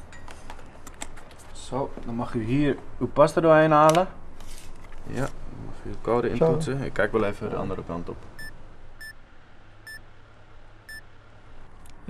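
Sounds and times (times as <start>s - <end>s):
payment terminal keypad beeps: 8.4s - 9.1s.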